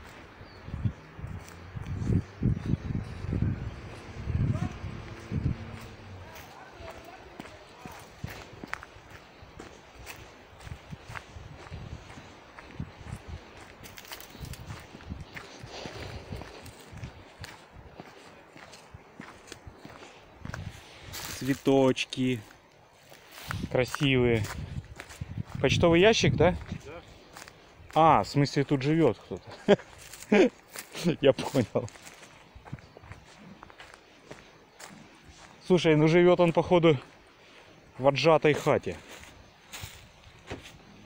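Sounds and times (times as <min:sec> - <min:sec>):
footsteps on dry leaves: 0:00.0 - 0:41.0.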